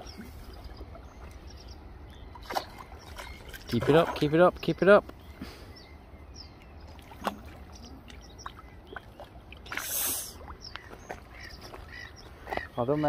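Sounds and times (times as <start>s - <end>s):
water splashing and sloshing: 0.0s - 13.0s.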